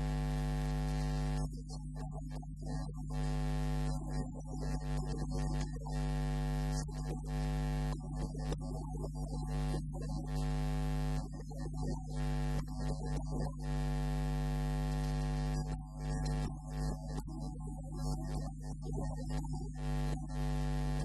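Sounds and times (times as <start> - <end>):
electrical mains hum: 0.0 - 21.0.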